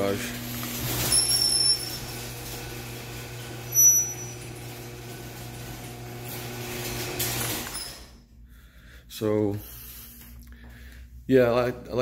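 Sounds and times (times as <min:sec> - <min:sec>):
garage door motor hum: 0:00.0 - 0:08.4
high-pitched squeak: 0:00.9 - 0:02.2, 0:03.7 - 0:04.6.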